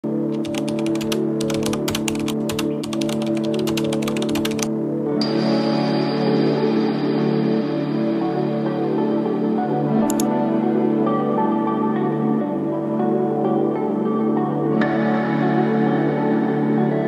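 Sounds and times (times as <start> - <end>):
background music: 0.0 - 17.0
computer keyboard typing: 0.3 - 4.7, 10.0 - 10.3.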